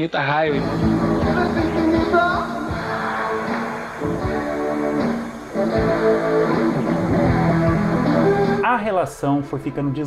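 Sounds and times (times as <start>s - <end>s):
live rock band with electric guitar: 0.5s - 8.6s.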